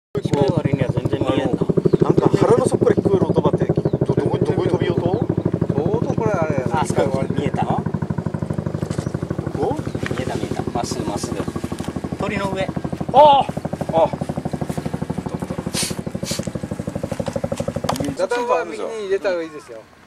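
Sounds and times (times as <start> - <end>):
people talking: 0.2 - 8.0, 9.4 - 11.6, 12.2 - 16.4, 17.9 - 19.9
small engine running: 0.2 - 19.9.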